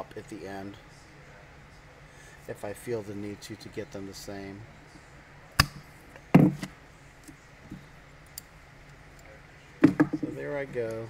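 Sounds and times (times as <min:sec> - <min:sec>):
wooden dowel snapping: 0:05.6 - 0:05.8.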